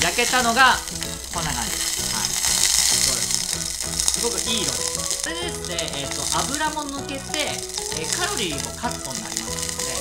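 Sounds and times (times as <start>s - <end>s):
background music with held notes: 0.0s - 10.0s
hot oil sizzling in a pot: 0.0s - 10.0s.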